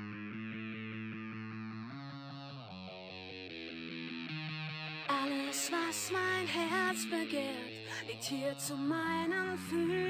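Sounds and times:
electric guitar pulsing chords: 0.0 - 7.4, 8.3 - 10.0.

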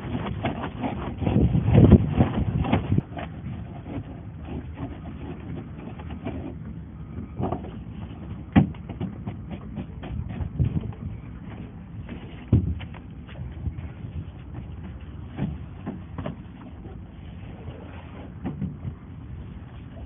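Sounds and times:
foam pods scraping and clicking: 0.0 - 18.8
handsaw cutting polystyrene: 0.1 - 2.2.

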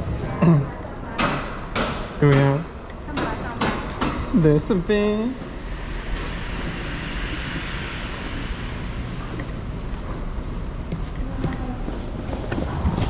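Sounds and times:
low rumble and hiss: 0.0 - 13.0
faint footsteps: 2.8 - 13.0.

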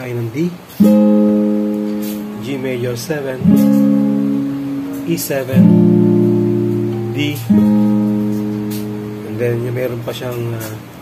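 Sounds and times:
acoustic guitar chord strummed: 0.6 - 11.0.

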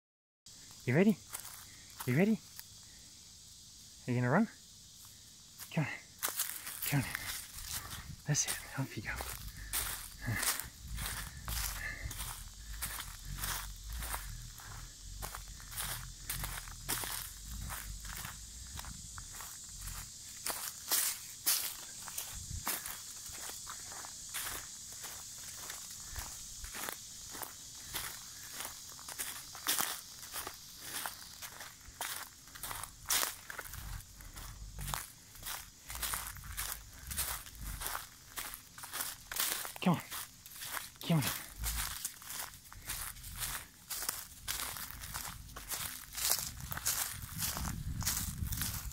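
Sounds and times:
footsteps crunching dry leaves: 0.6 - 2.8, 4.9 - 48.9.

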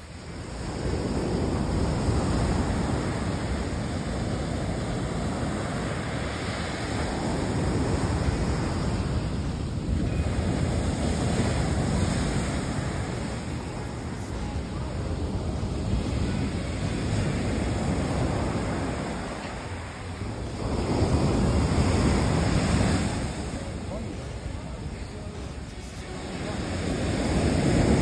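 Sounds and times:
surf washing up beach: 0.0 - 28.0
wind buffeting microphone: 0.0 - 28.0.

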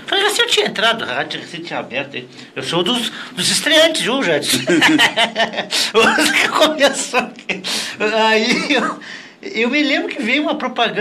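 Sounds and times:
people speaking: 0.0 - 11.0
people laughing: 4.5 - 7.7.

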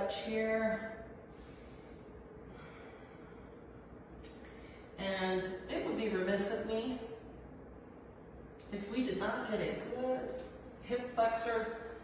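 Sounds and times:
faint steady hum: 0.0 - 12.0
woman breathing through nose: 1.3 - 3.6.

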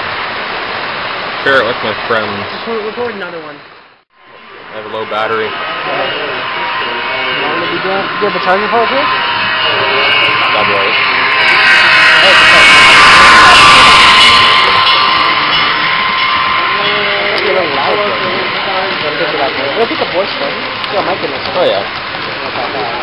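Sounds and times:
people talking: 1.4 - 3.6, 4.3 - 23.0
model train whining hiss: 4.6 - 23.0.

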